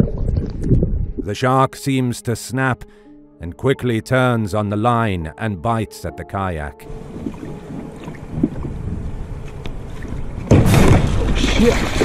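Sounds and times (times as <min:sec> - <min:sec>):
wind on microphone: 0:00.0 - 0:01.3, 0:07.0 - 0:10.5
water sloshing around kayak: 0:06.9 - 0:12.0.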